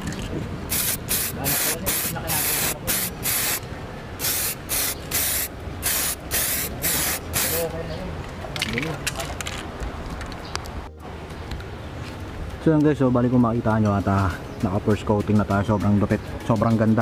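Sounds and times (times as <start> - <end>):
spray can hissing: 0.7 - 3.6, 4.2 - 7.7.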